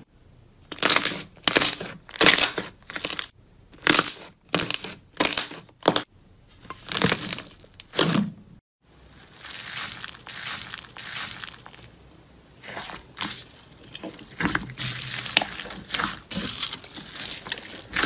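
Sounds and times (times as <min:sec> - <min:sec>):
plastic bottle crunching: 0:09.1 - 0:11.9, 0:12.6 - 0:18.0.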